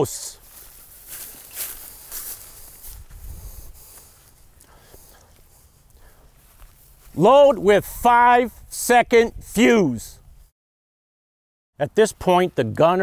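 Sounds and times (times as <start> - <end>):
footsteps in dry grass: 0.0 - 8.8.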